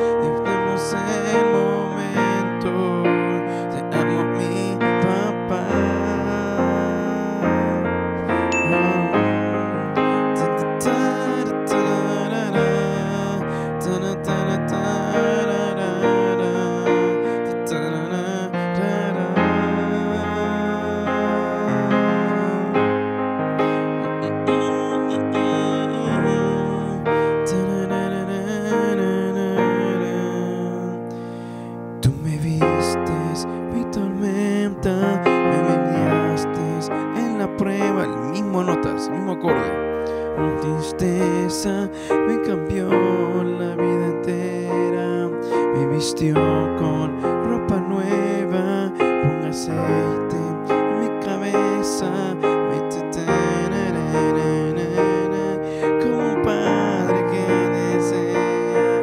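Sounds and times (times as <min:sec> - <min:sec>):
piano playing chords: 0:00.0 - 0:59.0.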